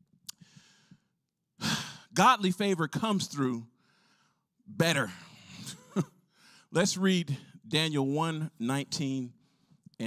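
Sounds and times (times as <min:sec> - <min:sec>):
mouth click: 0:00.2 - 0:00.4
faint breath: 0:00.4 - 0:02.1, 0:03.8 - 0:04.5.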